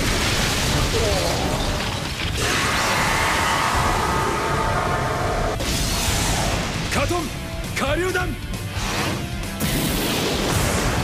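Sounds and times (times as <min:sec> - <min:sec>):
dramatic background music: 0:02.3 - 0:11.0.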